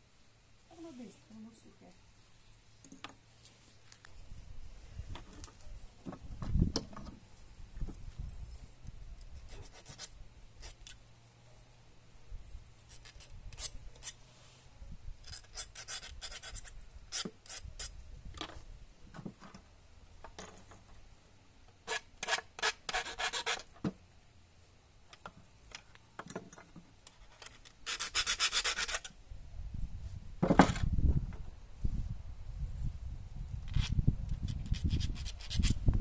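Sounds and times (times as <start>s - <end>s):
light clicks and scrapes of tools: 7.8s - 11.0s, 12.8s - 19.6s, 25.1s - 29.2s, 33.5s - 36.0s.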